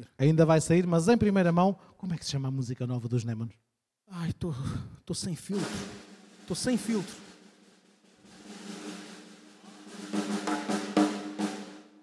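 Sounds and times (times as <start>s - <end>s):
drum roll on drum kit: 5.4s - 12.0s.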